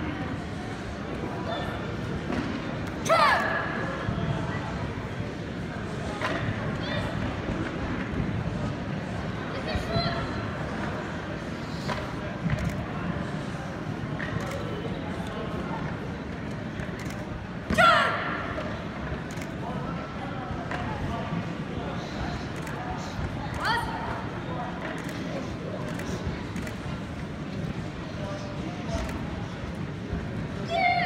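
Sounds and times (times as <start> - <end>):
murmur of voices in a hall: 0.0 - 31.0.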